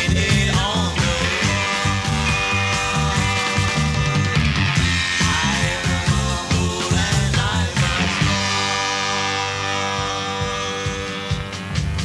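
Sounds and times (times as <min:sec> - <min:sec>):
rock band sustained chord: 0:00.0 - 0:12.0.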